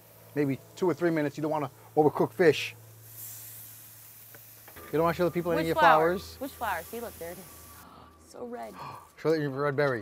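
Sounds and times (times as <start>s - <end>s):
fish sizzling on a grill: 0.0s - 10.0s.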